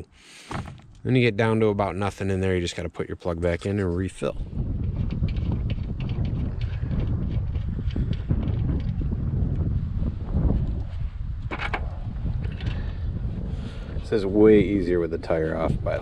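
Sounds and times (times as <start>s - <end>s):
wind buffeting microphone: 3.4s - 16.0s.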